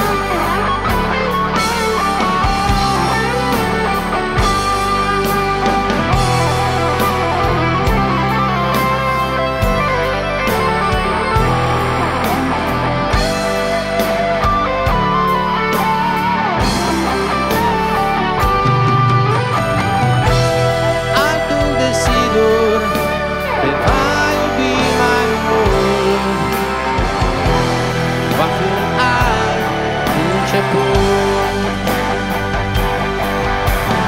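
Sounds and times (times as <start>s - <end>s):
bass notes: 0.0s - 34.0s
drums: 0.0s - 34.0s
electric guitar solo: 0.0s - 34.0s
live rock band: 0.0s - 34.0s.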